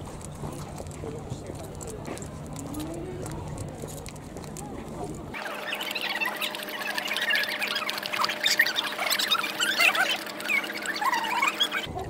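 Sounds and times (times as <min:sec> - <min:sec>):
dog lapping water: 0:04.9 - 0:12.0.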